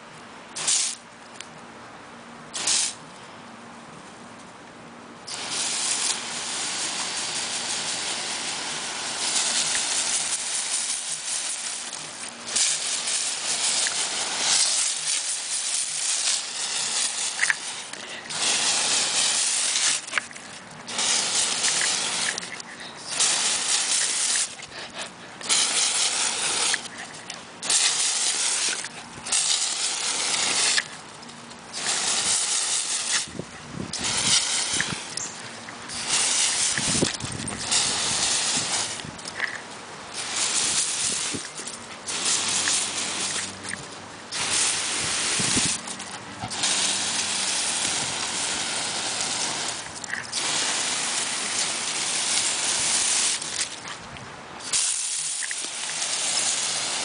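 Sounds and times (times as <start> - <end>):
hose nozzle spraying water: 0.6 - 1.0, 2.6 - 3.0, 5.3 - 57.0.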